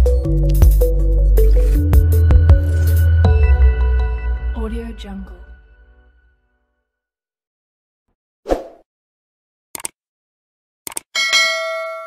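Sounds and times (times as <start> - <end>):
quick double clicks: 9.8 - 10.0, 10.9 - 11.1
bell chime ringing: 11.2 - 12.0.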